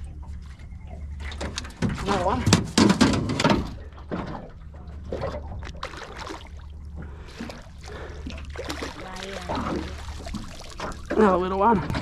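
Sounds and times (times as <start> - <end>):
steady low hum: 0.0 - 12.0
fish splashing at the surface: 5.2 - 6.7, 7.3 - 11.3.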